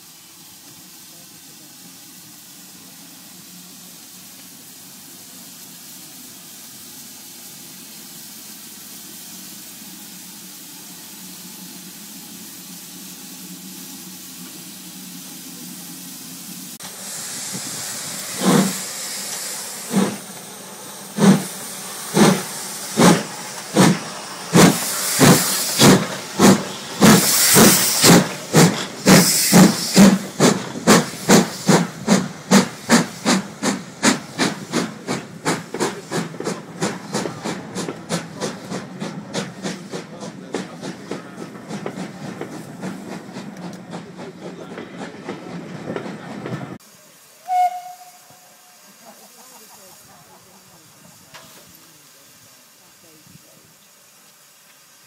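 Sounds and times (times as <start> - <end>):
steam hissing: 0.0 - 55.0
steam locomotive exhaust chuffs: 0.0 - 55.0.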